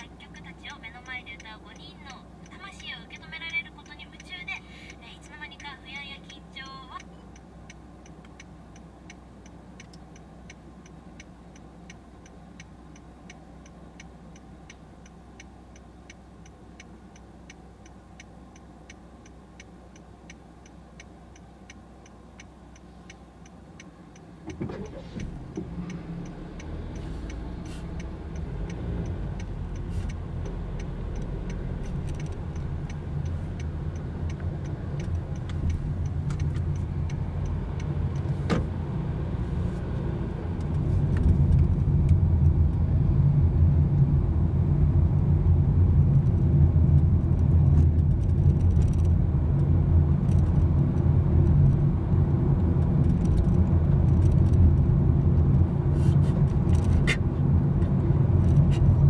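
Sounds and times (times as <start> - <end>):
car engine and tyre noise: 0.0 - 59.0.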